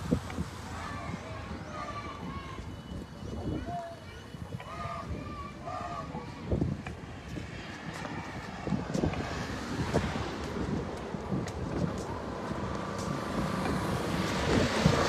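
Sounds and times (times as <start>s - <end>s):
faint voices: 0.0s - 15.0s
wind rumbling on microphone: 0.0s - 15.0s.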